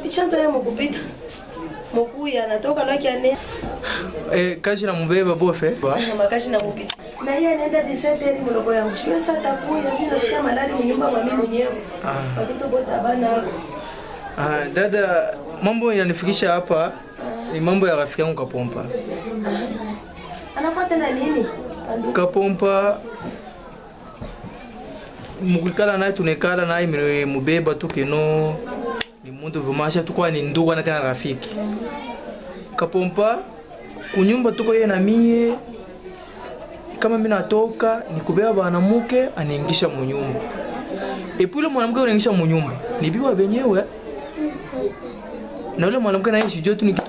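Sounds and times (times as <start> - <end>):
voices talking quietly: 0.0 - 47.0.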